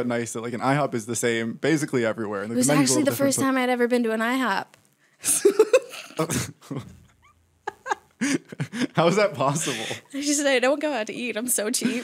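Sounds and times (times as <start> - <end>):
person speaking: 2.5 - 3.6, 9.0 - 10.5.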